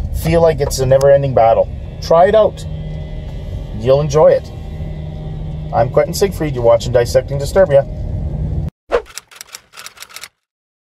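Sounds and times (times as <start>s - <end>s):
typewriter key strikes: 9.0s - 10.4s.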